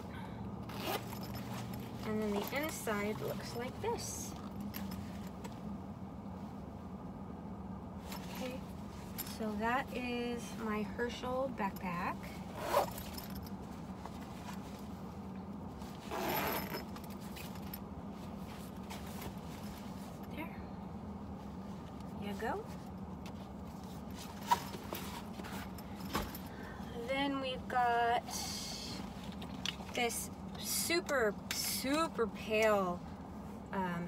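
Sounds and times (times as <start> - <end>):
steady low hum: 0.0 - 34.0
zipper being pulled open: 0.7 - 2.7, 12.5 - 13.2, 15.9 - 17.5
bag fabric rustling: 0.7 - 5.5, 12.4 - 20.2.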